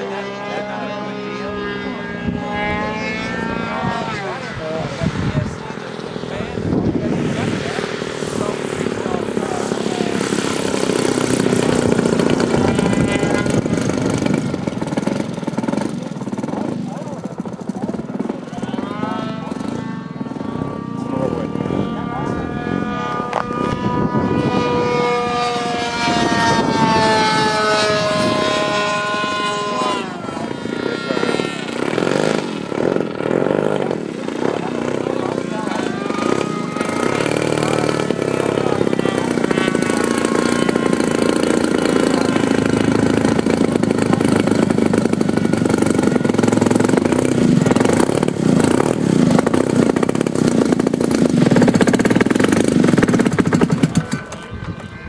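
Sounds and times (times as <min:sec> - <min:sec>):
model plane engine running: 0:00.0 - 0:55.0.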